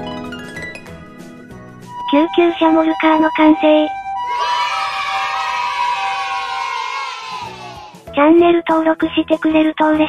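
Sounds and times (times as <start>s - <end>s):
background music: 0.0s - 10.0s
children cheering: 4.2s - 8.0s.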